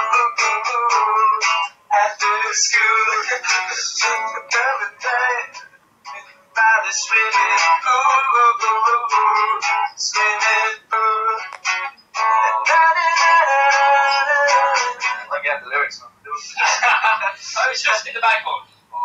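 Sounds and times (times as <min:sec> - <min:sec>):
man singing: 0:00.0 - 0:05.6, 0:06.6 - 0:11.6, 0:12.2 - 0:15.4
strummed acoustic guitar: 0:00.0 - 0:15.5.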